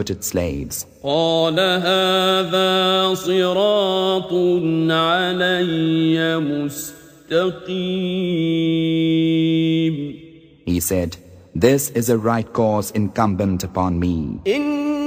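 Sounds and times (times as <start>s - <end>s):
man chanting melodic recitation: 0.0s - 15.0s.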